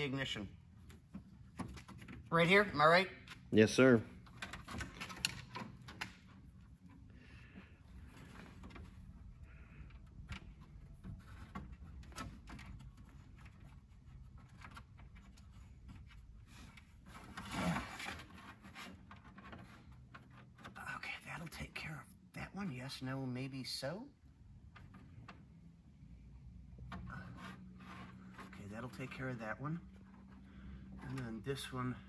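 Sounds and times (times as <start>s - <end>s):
wiring rustling and clicking: 0.0s - 2.6s, 3.2s - 21.6s, 24.4s - 25.7s.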